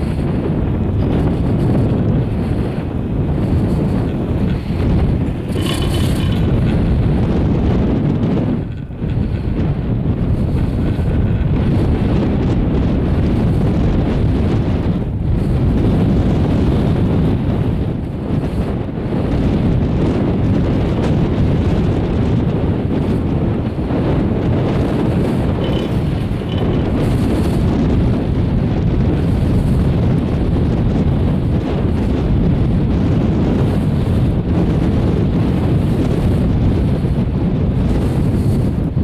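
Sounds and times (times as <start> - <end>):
wind buffeting microphone: 0.0 - 39.0
short high rattle: 3.7 - 7.1, 25.3 - 27.6.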